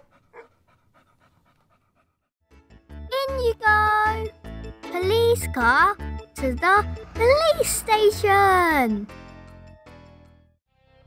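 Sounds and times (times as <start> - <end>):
dog panting: 0.0 - 2.3.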